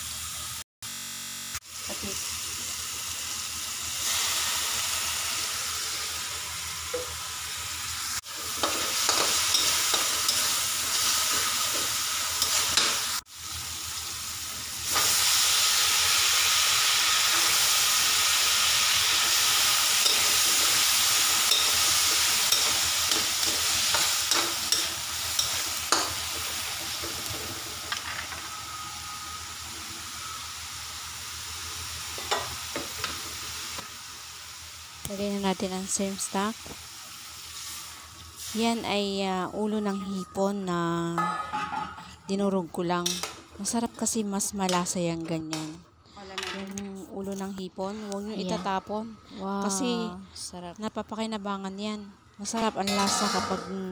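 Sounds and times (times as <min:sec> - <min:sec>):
food sizzling in hot oil: 0:01.6 - 0:39.9.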